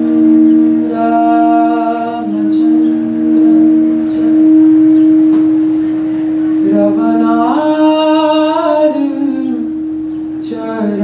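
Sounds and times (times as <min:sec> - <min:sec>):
harmonium drone: 0:00.0 - 0:11.0
woman singing long notes: 0:00.0 - 0:11.0.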